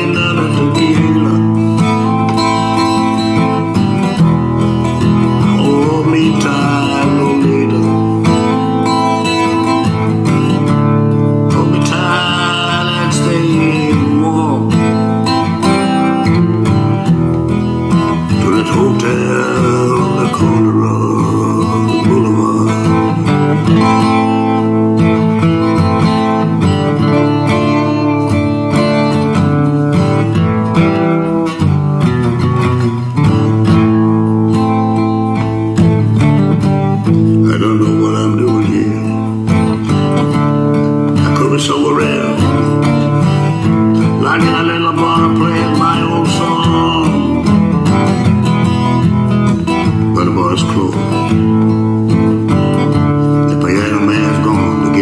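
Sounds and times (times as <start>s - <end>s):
man singing: 0.0s - 30.4s, 36.6s - 48.8s, 49.6s - 55.0s
acoustic guitar strummed: 0.0s - 55.0s.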